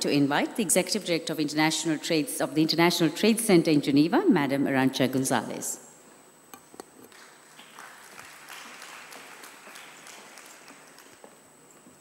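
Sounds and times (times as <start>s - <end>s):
audience applauding lightly: 7.1s - 12.0s.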